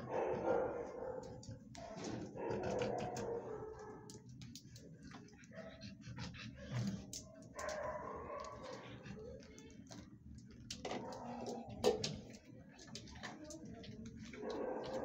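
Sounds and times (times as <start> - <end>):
dogs barking: 0.0 - 4.3, 5.1 - 9.5, 10.8 - 12.3, 14.3 - 15.0.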